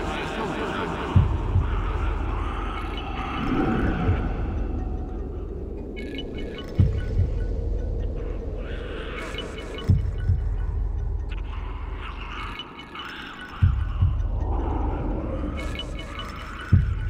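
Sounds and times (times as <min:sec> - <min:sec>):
steady low drone: 0:00.0 - 0:12.6, 0:13.5 - 0:17.0
paired low thumps: 0:03.4 - 0:05.8, 0:06.8 - 0:08.1, 0:09.9 - 0:11.3.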